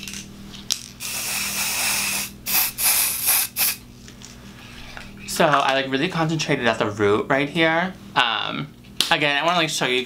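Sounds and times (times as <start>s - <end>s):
aerosol spray hissing: 1.0s - 3.8s.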